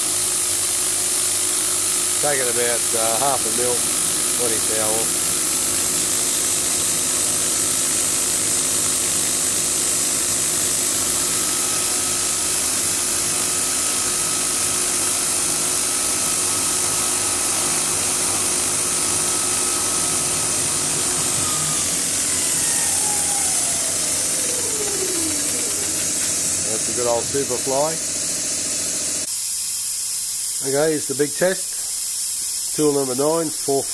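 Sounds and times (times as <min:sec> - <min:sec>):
milling machine spindle cutting: 0:00.0 - 0:29.3
spindle whine falling in pitch: 0:14.9 - 0:28.4
steady high hiss: 0:29.3 - 0:33.9.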